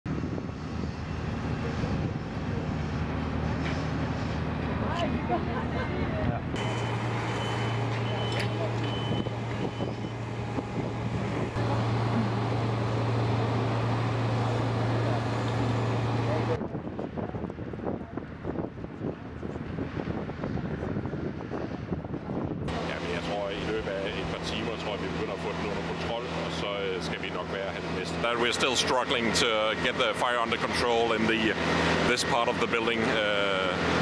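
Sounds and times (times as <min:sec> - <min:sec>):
low engine drone: 0:00.1 - 0:16.7, 0:22.5 - 0:34.0.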